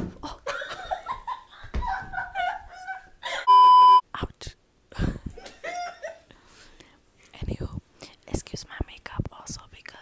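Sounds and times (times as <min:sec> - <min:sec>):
loud electronic beep: 0:03.5 - 0:04.0.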